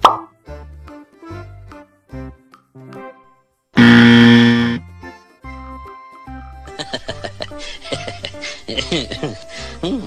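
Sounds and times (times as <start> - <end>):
children's background music: 0.0 - 3.8, 4.8 - 10.0
loud buzzer: 3.8 - 4.8.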